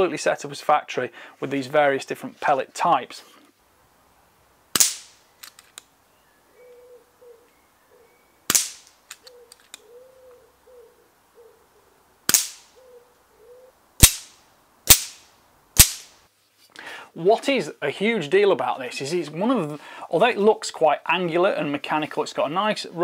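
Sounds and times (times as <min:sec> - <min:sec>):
air rifle shots: 0:04.8 - 0:05.2, 0:08.5 - 0:08.9, 0:12.3 - 0:12.7, 0:14.0 - 0:16.1
loading handle clicks: 0:05.4 - 0:05.9.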